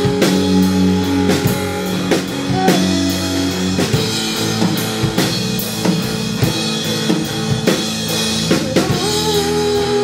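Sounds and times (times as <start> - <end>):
drum kit: 0.0 - 10.0
electric guitar chords: 0.0 - 10.0
rock band playing: 0.0 - 10.0.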